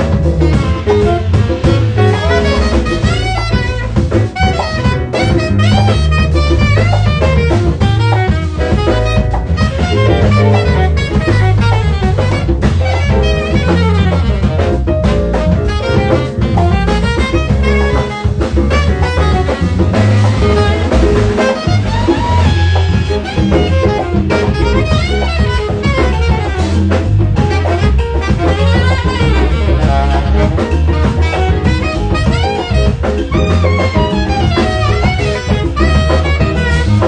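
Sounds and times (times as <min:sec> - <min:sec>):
drum kit with cymbals: 0:00.0 - 0:37.0
low bass line: 0:00.0 - 0:37.0
saxophone solo: 0:00.0 - 0:37.0.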